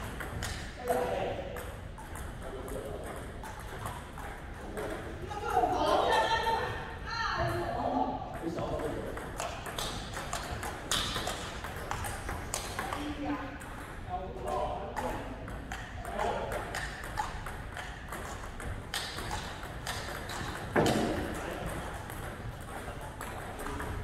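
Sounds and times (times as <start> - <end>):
table tennis balls clicking: 0.0 - 5.2, 8.4 - 24.0.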